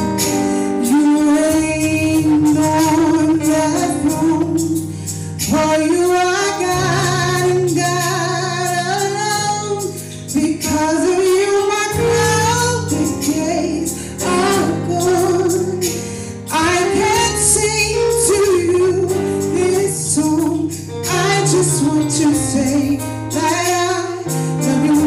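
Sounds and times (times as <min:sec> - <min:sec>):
instrumental accompaniment: 0:00.0 - 0:25.0
woman singing gospel song: 0:00.7 - 0:25.0.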